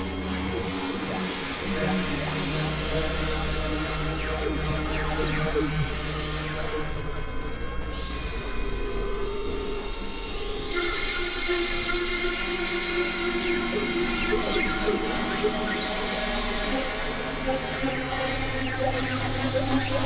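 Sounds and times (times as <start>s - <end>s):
synthesizer drone tones: 0.0s - 20.0s.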